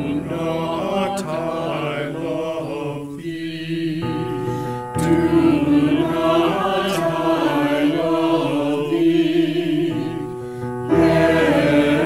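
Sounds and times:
choir singing sustained notes: 0.0 - 12.0
piano accompaniment: 0.0 - 12.0.

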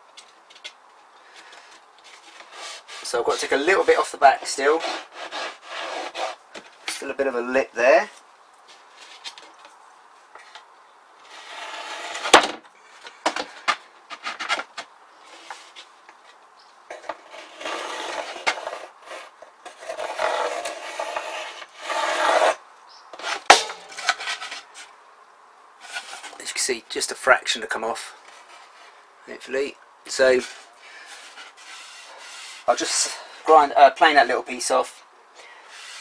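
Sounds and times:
wood board scraping wood: 1.4 - 7.0, 11.2 - 12.6, 13.3 - 24.9, 25.8 - 26.4, 28.2 - 29.0, 30.2 - 33.2, 35.7 - 36.0.

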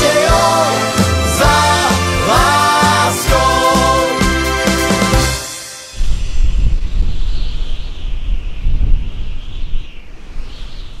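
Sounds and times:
deep wind-like rumble: 6.0 - 11.0.

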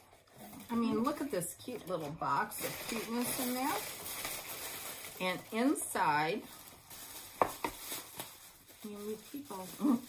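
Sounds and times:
woman speaking: 0.6 - 3.9, 5.2 - 6.5, 8.8 - 10.0.

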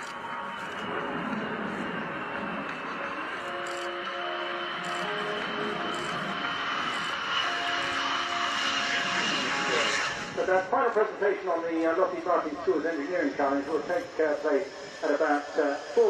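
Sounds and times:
jet engine roar with whine: 0.0 - 16.0
quiet background music: 0.0 - 16.0.

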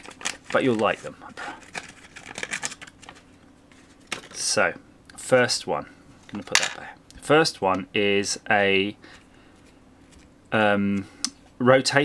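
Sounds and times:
plastic bag crinkling: 0.0 - 3.3.

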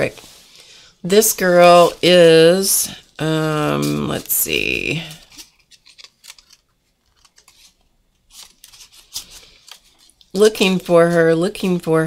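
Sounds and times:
pages rustling: 3.5 - 11.5.

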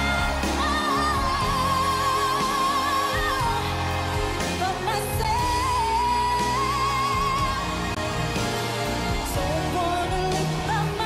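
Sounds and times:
band with saxophones and brass: 0.0 - 11.0
woman singing a power ballad: 0.0 - 11.0.

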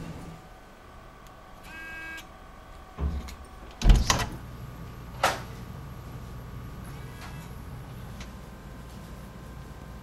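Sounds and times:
door thump: 3.8 - 4.3.

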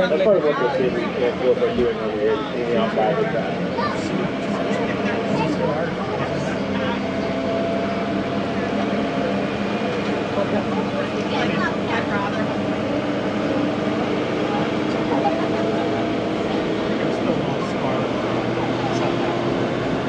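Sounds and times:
tram motor hum: 0.0 - 20.0.

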